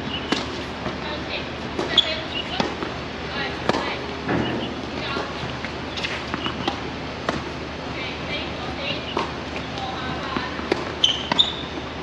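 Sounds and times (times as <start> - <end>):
racket hitting tennis ball: 0.1 - 7.6, 8.6 - 11.8
ball bouncing on court: 3.6 - 7.5, 9.0 - 11.8.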